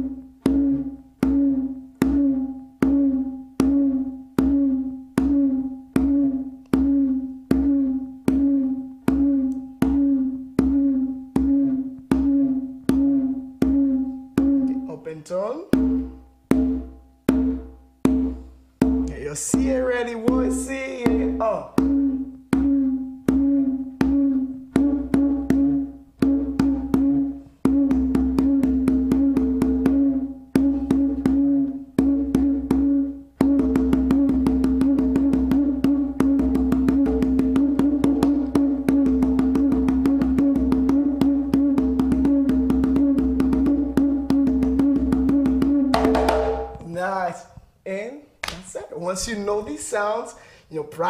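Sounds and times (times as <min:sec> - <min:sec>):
conga drum hand strokes: 0:00.0 - 0:15.0, 0:15.7 - 0:47.0
ringing drum pitch: 0:00.0 - 0:47.0.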